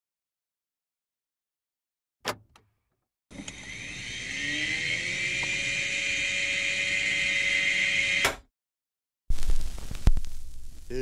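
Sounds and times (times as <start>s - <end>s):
record player motor whir: 3.3s - 8.4s.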